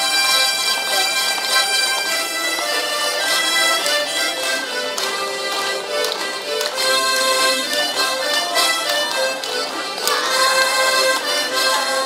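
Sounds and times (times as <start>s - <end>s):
harmonica ensemble playing: 0.0s - 12.0s.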